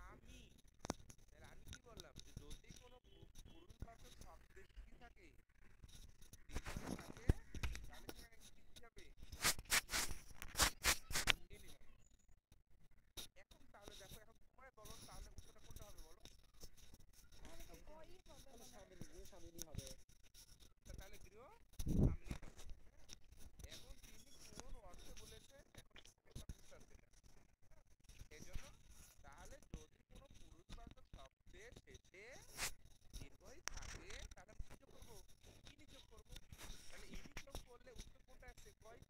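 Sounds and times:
faint indistinct voices: 0:13.2 - 0:39.0.

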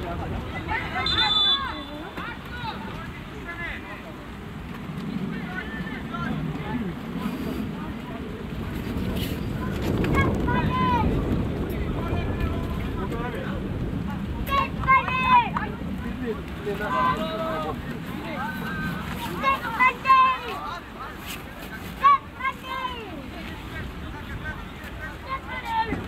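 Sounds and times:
wind rumbling on microphone: 0:00.0 - 0:26.0.

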